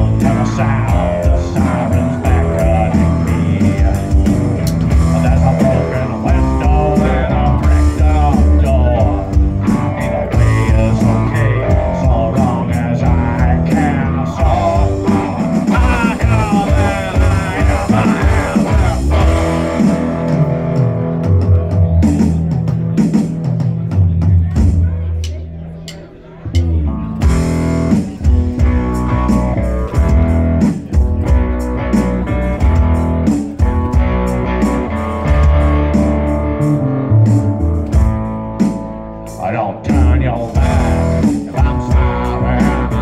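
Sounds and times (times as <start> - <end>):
electric guitar lead: 0.0 - 24.0, 25.4 - 43.0
drum kit: 0.0 - 43.0
upright bass: 0.0 - 43.0.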